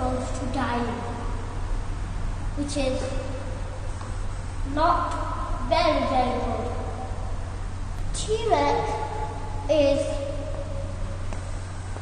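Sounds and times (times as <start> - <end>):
low room hum: 0.0 - 12.0
child's voice holding a word: 2.6 - 3.4, 4.7 - 6.9, 8.2 - 10.5.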